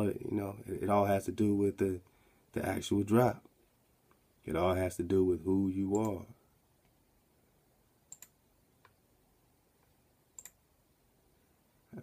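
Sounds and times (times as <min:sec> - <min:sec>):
computer mouse clicks: 0:08.1 - 0:09.0, 0:09.8 - 0:10.6.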